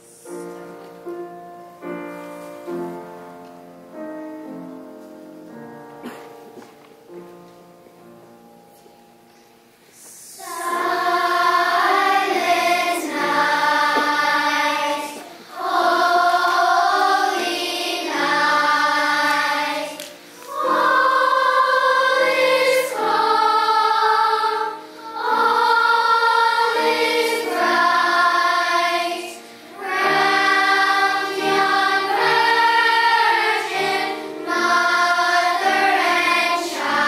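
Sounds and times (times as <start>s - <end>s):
children's choir singing: 0.0s - 1.0s, 5.9s - 7.1s, 10.0s - 37.0s.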